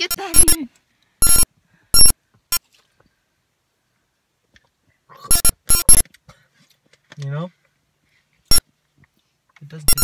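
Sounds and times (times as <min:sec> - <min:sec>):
electronic alert blips: 0:00.0 - 0:00.6, 0:01.2 - 0:01.4, 0:05.3 - 0:06.0.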